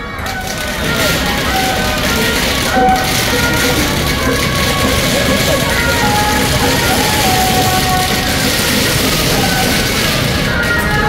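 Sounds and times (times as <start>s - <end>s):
loud amplified procession music: 0.0s - 11.0s.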